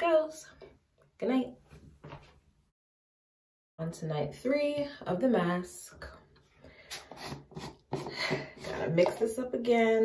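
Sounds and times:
woman speaking: 0.0 - 0.6, 1.2 - 1.6, 3.8 - 6.2, 8.7 - 10.0.

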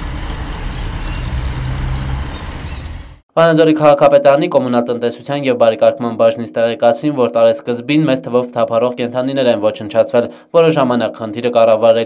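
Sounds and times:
street traffic noise: 0.0 - 3.2
vehicle engine running: 0.0 - 3.2.

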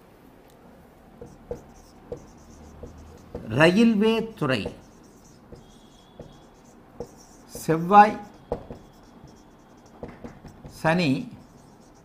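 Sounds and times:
marker writing on whiteboard: 1.1 - 12.0
marker tapping: 1.2 - 12.0
thin high marker squeak: 1.2 - 12.0.

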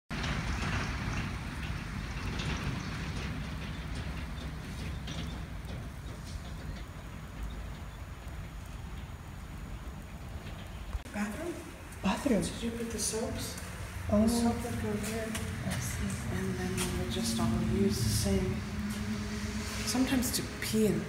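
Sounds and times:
wind buffeting microphone: 0.1 - 21.0.

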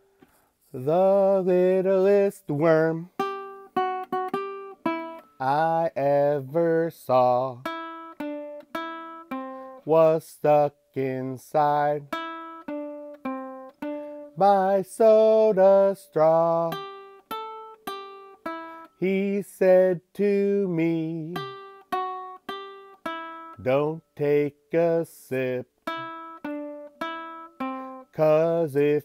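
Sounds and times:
baritone ukulele picking notes: 2.8 - 6.4, 7.3 - 9.8, 11.7 - 19.4, 20.7 - 29.0
ukulele notes plucked: 25.9 - 27.9.

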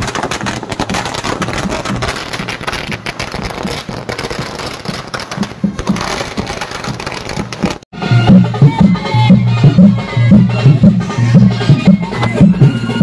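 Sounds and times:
music with clattering percussion: 0.0 - 13.0.

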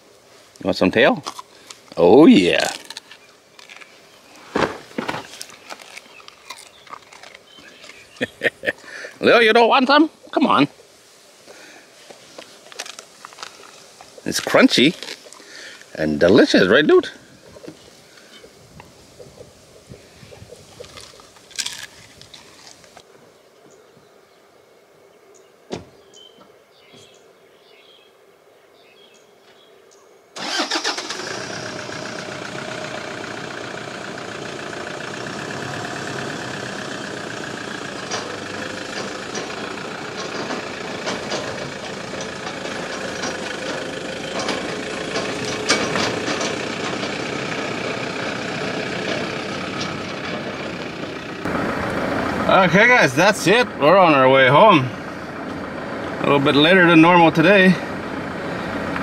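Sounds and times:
truck engine starting and running: 0.7 - 10.6, 12.7 - 17.8, 30.4 - 59.0.

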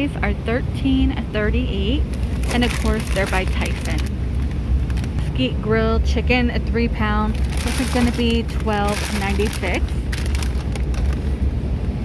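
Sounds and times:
low background rumble: 0.0 - 12.0
plastic bag crinkling: 2.1 - 5.2, 7.3 - 11.4.

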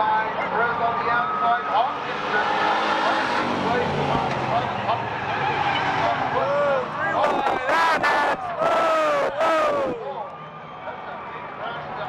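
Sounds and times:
racing car engines: 0.0 - 12.0
spectators' voices: 0.0 - 12.0.

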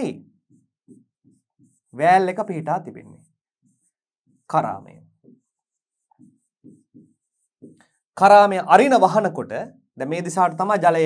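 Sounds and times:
pen writing on board: 0.0 - 2.4, 3.0 - 8.1.

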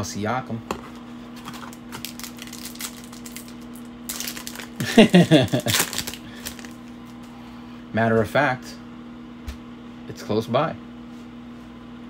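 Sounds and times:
foil wrapper crinkling: 1.4 - 7.3.

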